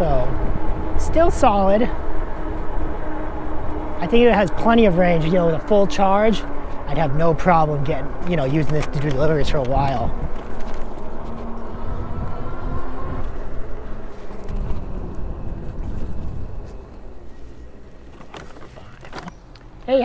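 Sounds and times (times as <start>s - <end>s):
wind and tire rolling noise: 0.0s - 20.0s.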